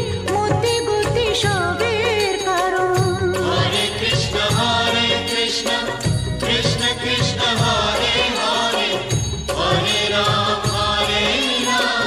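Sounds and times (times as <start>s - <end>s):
chanted singing: 3.4s - 12.0s.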